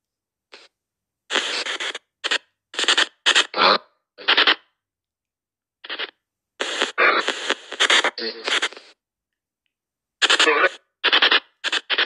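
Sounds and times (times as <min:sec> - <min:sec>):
chopped radio broadcast fragments: 0:01.3 - 0:04.6, 0:05.8 - 0:09.0, 0:10.2 - 0:12.0
snatches of radio voices: 0:01.3 - 0:04.6, 0:05.9 - 0:09.0, 0:10.2 - 0:12.0.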